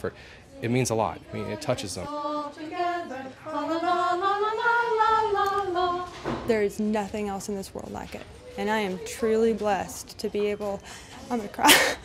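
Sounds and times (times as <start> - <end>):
carolers singing unaccompanied: 0.6 - 6.5.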